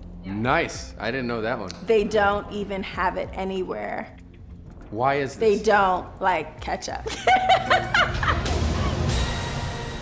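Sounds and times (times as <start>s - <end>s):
laughter: 7.1s - 9.0s.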